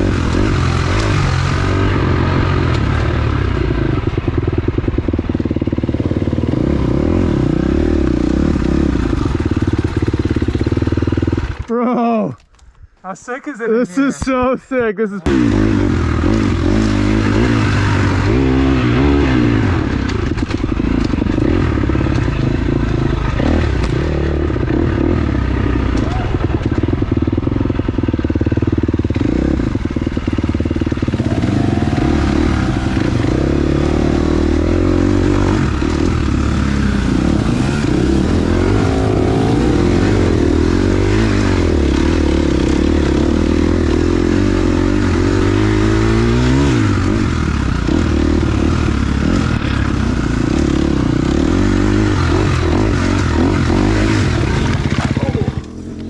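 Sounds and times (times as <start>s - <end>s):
dirt bike engine revving: 0.0s - 12.0s, 15.2s - 56.0s.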